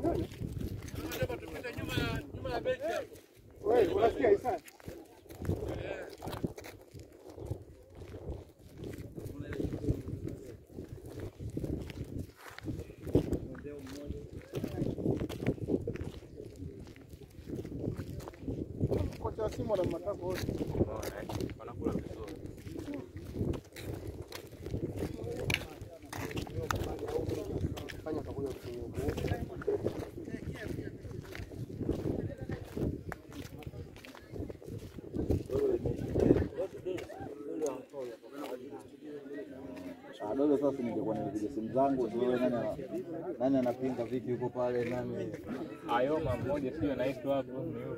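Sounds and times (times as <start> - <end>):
footsteps on brick paving: 0.0 - 41.3, 42.0 - 46.6
people talking: 0.0 - 47.9.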